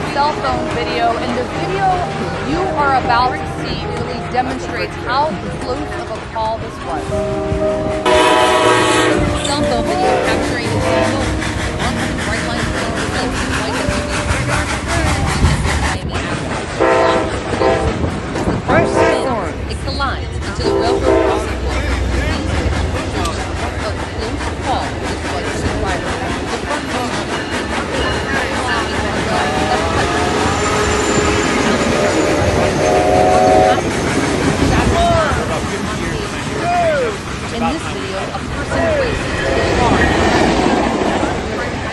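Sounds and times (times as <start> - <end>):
train horn chord: 0.0 - 36.2
train rumble and wheel clatter: 0.0 - 41.9
voices talking: 0.0 - 41.9.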